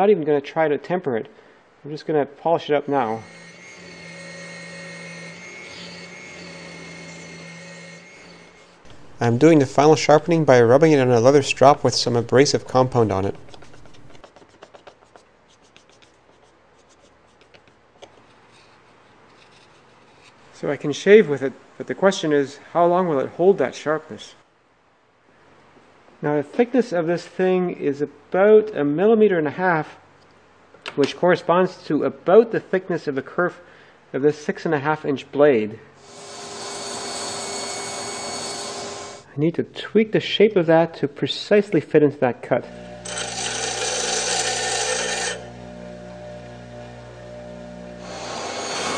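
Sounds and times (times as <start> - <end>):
table saw cutting wood: 2.9 - 14.2, 36.0 - 39.2, 42.7 - 48.9
knife blade stropping on leather: 12.8 - 17.6, 18.3 - 20.6.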